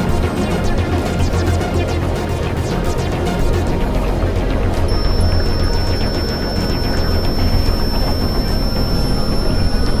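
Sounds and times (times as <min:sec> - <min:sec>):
electronic hiss: 0:04.9 - 0:10.0
thin high whistle: 0:04.9 - 0:10.0.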